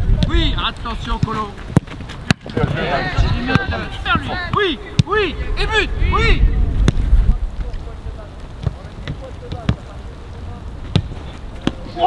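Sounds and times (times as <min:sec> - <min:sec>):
wind rumble on microphone: 0:00.0 - 0:01.8, 0:02.5 - 0:04.3, 0:05.1 - 0:12.0
footballs being kicked: 0:08.6 - 0:09.9, 0:10.8 - 0:12.0.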